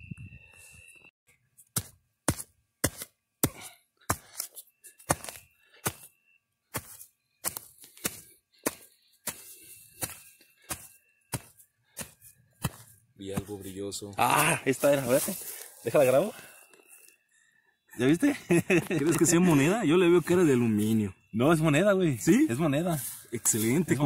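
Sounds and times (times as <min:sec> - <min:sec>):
digging tool chopping soil: 0:01.7 - 0:06.1, 0:06.7 - 0:13.6.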